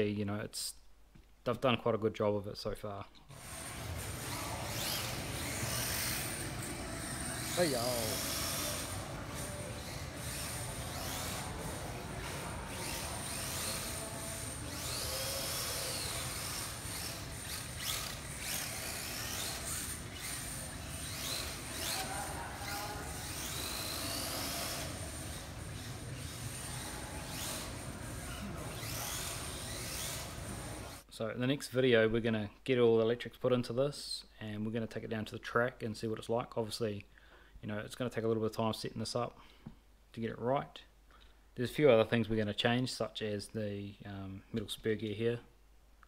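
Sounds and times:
toy car electric motors whining: 0:03.3 - 0:31.0.

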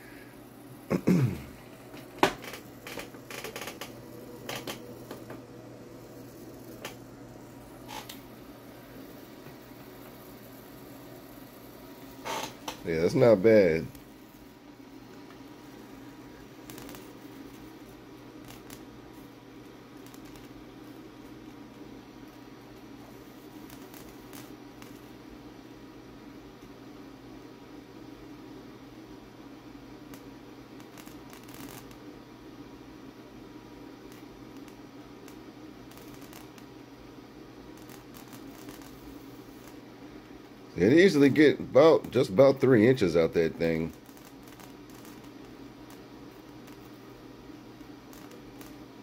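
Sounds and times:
tesla coil humming: 0:00.0 - 0:27.2, 0:32.8 - 0:49.0
soft electrical crackles: 0:00.0 - 0:49.0.

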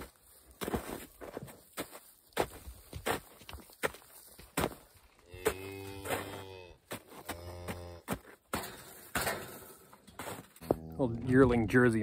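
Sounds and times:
footsteps and knocks in straw: 0:00.0 - 0:10.9
cow mooing: 0:05.3 - 0:08.2.

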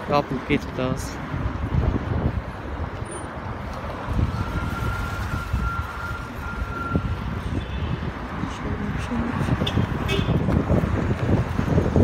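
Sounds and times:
wind buffeting microphone: 0:01.2 - 0:12.0.

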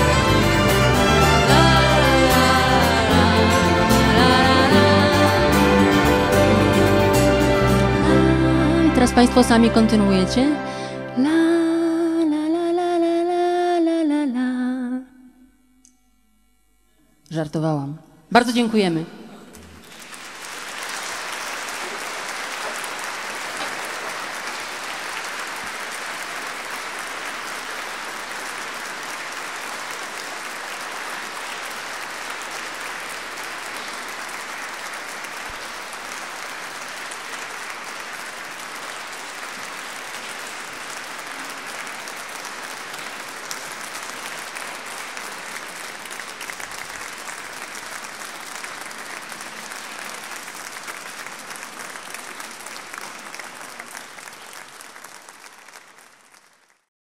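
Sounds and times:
audience applauding: 0:00.0 - 0:08.5, 0:19.5 - 0:56.9.

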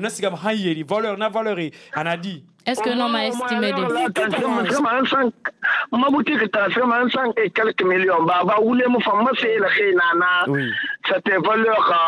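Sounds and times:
person talking: 0:02.8 - 0:04.9, 0:10.4 - 0:10.8.

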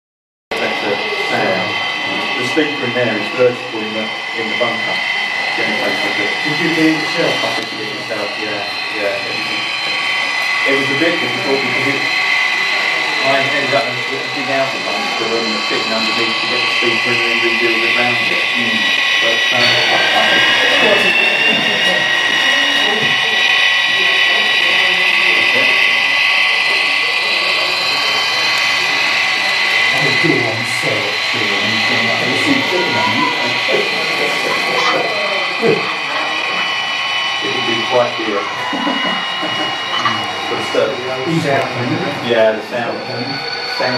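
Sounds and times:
high-pitched hum: 0:00.5 - 0:43.9
model locomotive mechanical whine: 0:00.5 - 0:43.9
people talking: 0:00.5 - 0:43.9.

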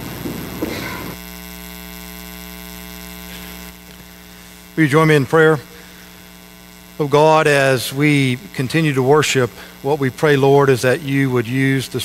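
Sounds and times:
electrical mains hum: 0:00.0 - 0:12.0.

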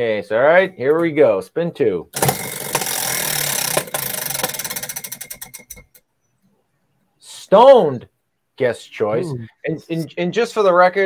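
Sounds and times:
prize wheel clicking: 0:02.2 - 0:06.1.

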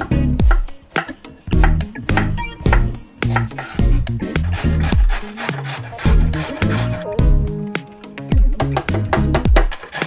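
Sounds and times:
background music with bass beat: 0:00.0 - 0:05.2, 0:05.8 - 0:09.7
carrot grated on metal grater: 0:03.3 - 0:07.1, 0:09.7 - 0:10.0.

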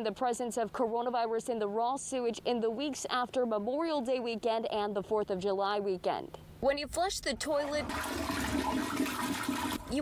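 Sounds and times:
toilet flushing: 0:07.5 - 0:10.0.

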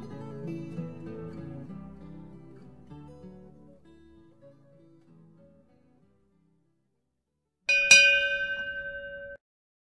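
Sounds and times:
bell-like chime ringing: 0:07.7 - 0:09.4.

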